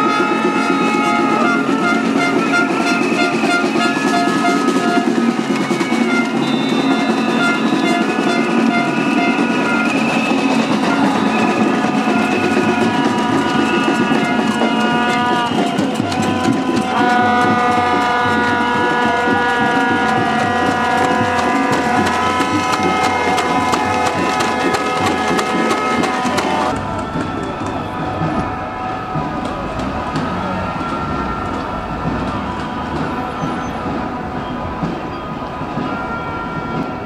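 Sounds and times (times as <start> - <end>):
long steady horn tones: 0.0 - 37.0
marching crowd: 0.0 - 37.0.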